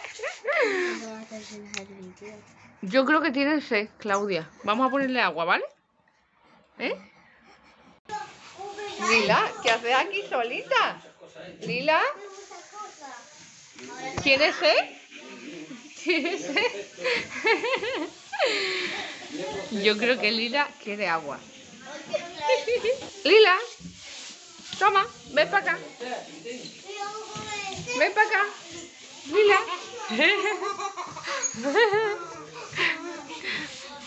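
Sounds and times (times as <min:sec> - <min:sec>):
girl laughing: 0:30.1 - 0:33.2.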